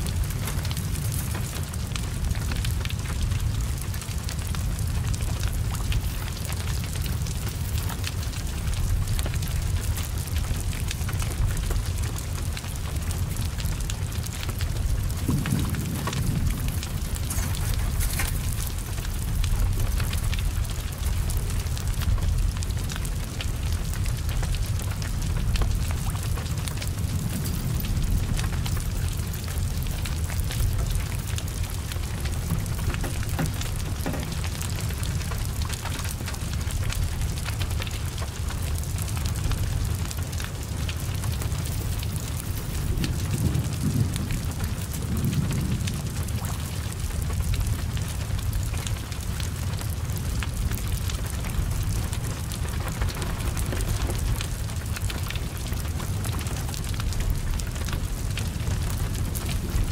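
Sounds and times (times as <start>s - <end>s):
heavy rain falling: 0.0s - 59.9s
low rumble of fire: 0.0s - 59.9s
sharp crackles and ticks: 0.0s - 59.9s.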